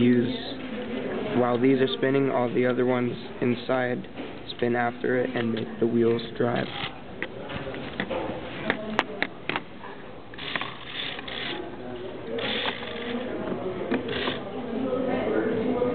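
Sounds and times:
plastic gears clicking and rattling: 0:10.4 - 0:11.6, 0:12.4 - 0:13.3, 0:14.0 - 0:14.4
electric motor whirring: 0:12.4 - 0:13.3, 0:14.1 - 0:14.4.

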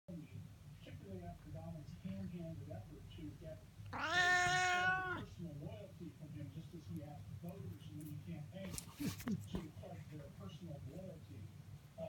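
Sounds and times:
cat meowing: 0:03.9 - 0:05.3.

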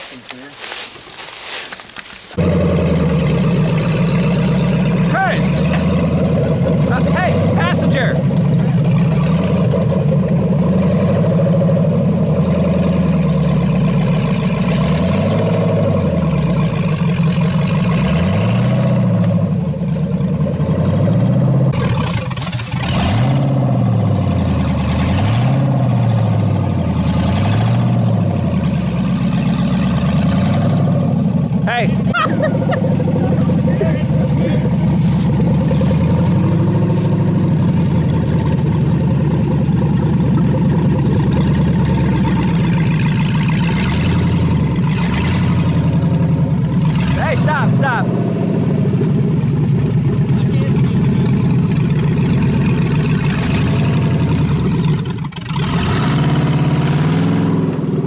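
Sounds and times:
buggy engine revving under load: 0:02.3 - 0:58.0.

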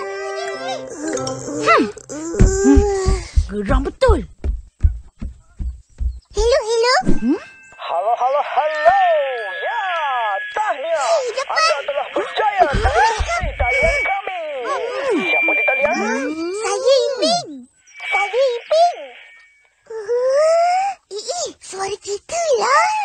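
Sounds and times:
distorted radio voices: 0:07.5 - 0:19.6
steady whistling tones: 0:12.8 - 0:14.1, 0:17.8 - 0:19.6.

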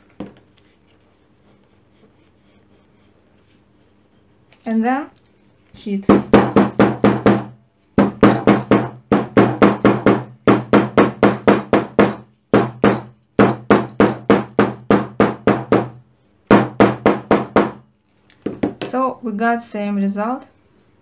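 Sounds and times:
hammer striking leather: 0:06.1 - 0:17.9.

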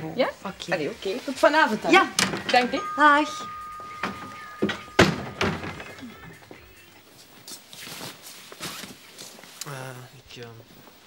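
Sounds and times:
background music: 0:01.9 - 0:06.8
door thudding shut: 0:02.1 - 0:06.0
shop door bell ringing: 0:02.1 - 0:06.4.

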